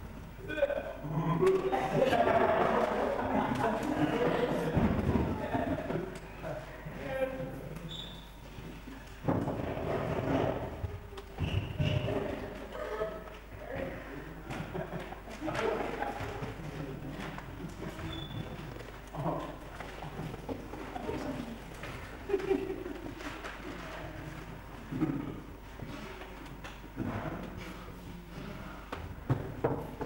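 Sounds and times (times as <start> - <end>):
indistinct voices in echoing hall: 0.0 - 30.0.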